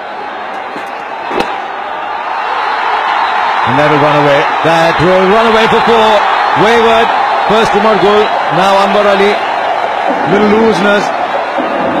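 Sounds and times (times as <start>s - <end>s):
crowd noise: 0.0s - 12.0s
cricket bat hitting ball: 0.6s - 1.6s.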